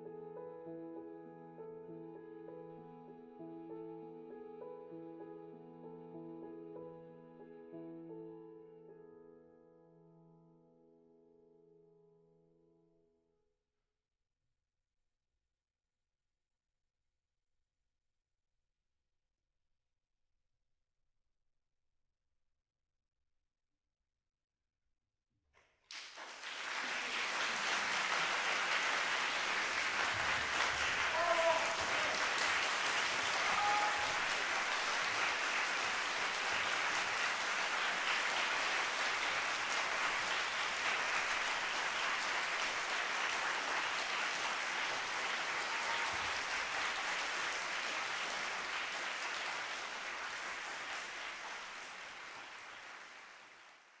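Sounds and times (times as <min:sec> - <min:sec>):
audience applauding: 0:25.9 - 0:54.0.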